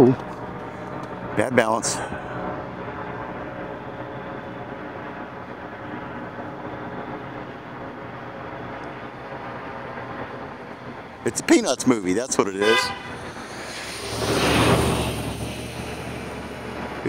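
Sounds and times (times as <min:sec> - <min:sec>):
low engine hum: 0:00.0 - 0:17.0.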